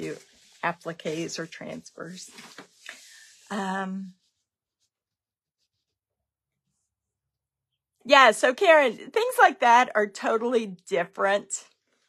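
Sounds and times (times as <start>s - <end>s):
woman saying um: 3.5s - 4.2s.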